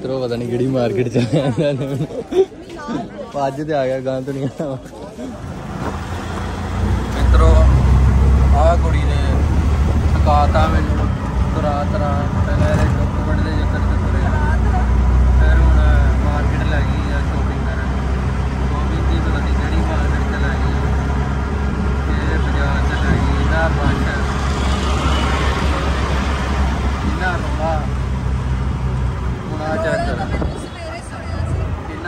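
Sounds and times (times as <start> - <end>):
road and traffic noise: 0.0 - 32.0.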